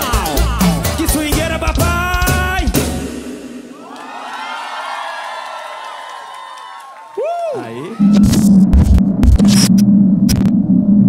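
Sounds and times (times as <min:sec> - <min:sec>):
loud low electronic hum: 0:08.0 - 0:11.0.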